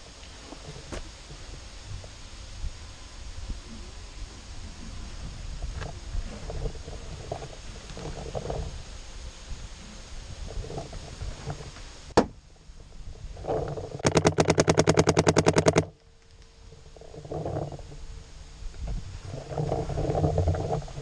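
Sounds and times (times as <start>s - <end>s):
paintball marker firing: 14.0s - 15.9s.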